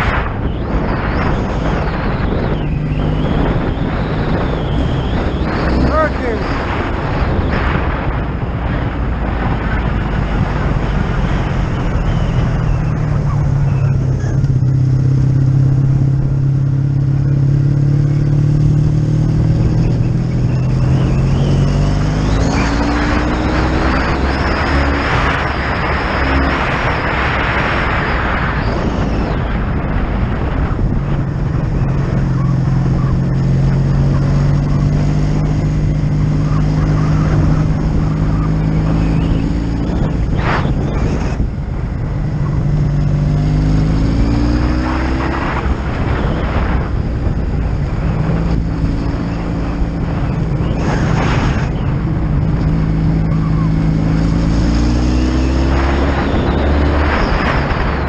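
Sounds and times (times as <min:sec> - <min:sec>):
motorcycle engine running: 0:00.0 - 0:27.6, 0:28.6 - 0:58.0
rush of wind noise: 0:00.0 - 0:58.0.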